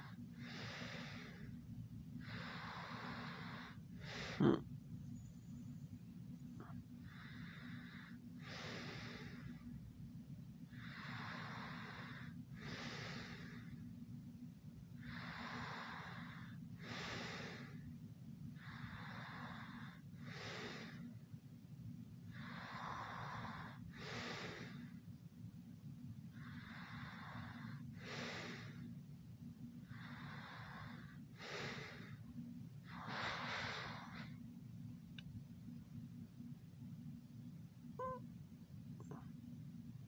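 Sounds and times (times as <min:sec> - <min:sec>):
heavy sleeping breathing: 0:00.0 - 0:04.7, 0:06.6 - 0:09.8, 0:10.6 - 0:13.9, 0:14.9 - 0:17.9, 0:18.5 - 0:21.2, 0:22.2 - 0:25.1, 0:26.2 - 0:29.0, 0:29.7 - 0:34.4
steady low hum: 0:00.0 - 0:40.0.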